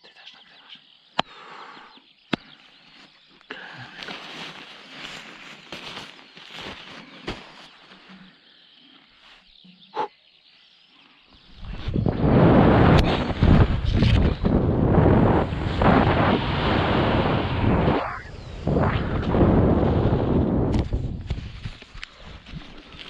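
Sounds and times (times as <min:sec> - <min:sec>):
handling rustle: 0:04.0 - 0:08.3
wind rushing on microphone: 0:11.5 - 0:23.0.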